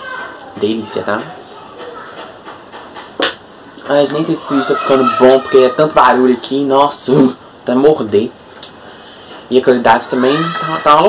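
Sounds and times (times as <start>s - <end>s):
glass bottle clinking on shelf: 5.2s - 5.6s.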